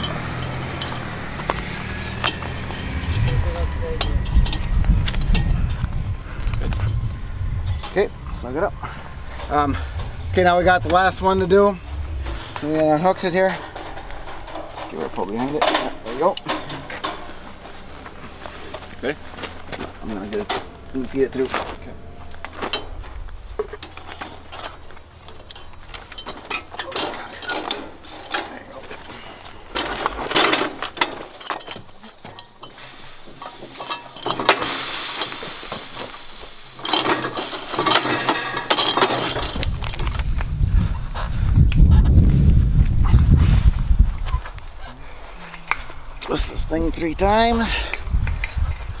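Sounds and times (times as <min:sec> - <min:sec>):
barbed wire clinking and scraping: 0:00.0 - 0:40.5
loud low rumble: 0:00.8 - 0:26.3.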